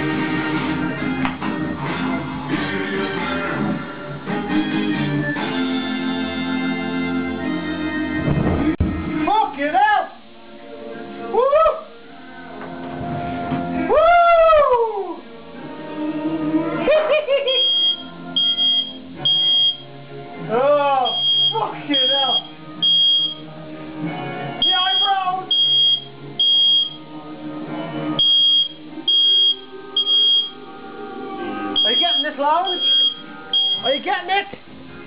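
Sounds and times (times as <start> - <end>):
music: 0.0 - 35.0
smoke alarm beeping: 17.5 - 19.9, 21.1 - 23.5, 24.6 - 27.0, 28.2 - 30.6, 31.8 - 34.1.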